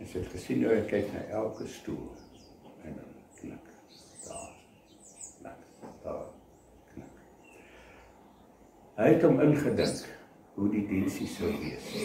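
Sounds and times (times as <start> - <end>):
man preaching: 9.0 - 12.0.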